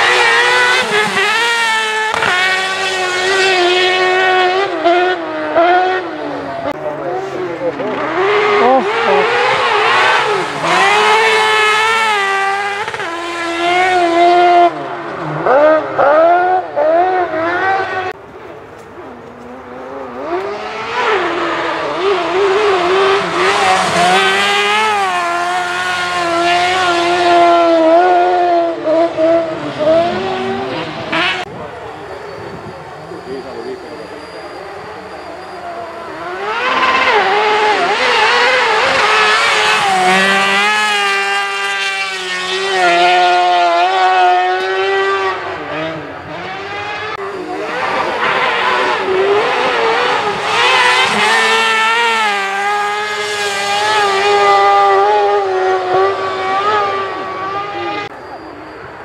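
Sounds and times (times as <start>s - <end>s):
rally car engines revving: 0.0s - 59.0s.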